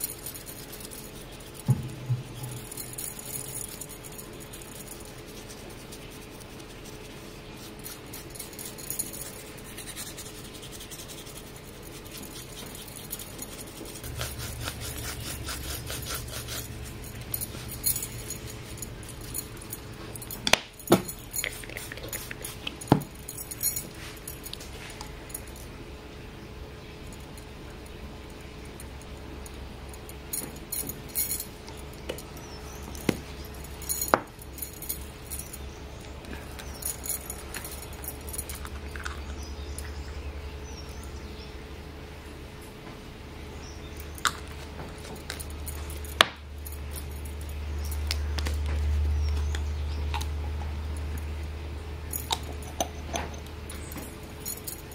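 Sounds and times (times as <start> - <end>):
metal bangles clinking: 0.0 - 25.7, 28.3 - 41.0, 45.0 - 51.4, 52.0 - 54.9
low hum: 0.0 - 54.9
sharp knocks: 1.7 - 2.4.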